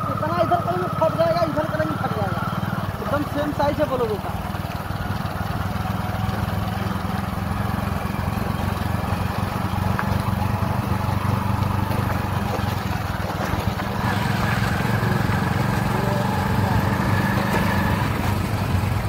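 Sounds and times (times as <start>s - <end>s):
motorcycle engine running: 0.0s - 19.0s
road and wind noise: 0.0s - 19.0s.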